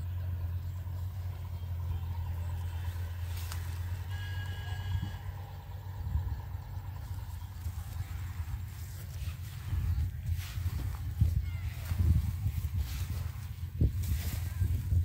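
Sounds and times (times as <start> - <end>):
steady low rumble: 0.0 - 15.0
brief high tone: 3.7 - 5.5.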